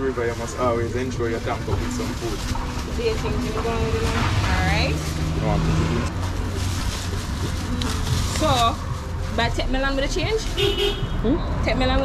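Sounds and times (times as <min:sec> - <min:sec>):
low motor rumble: 0:00.0 - 0:10.5.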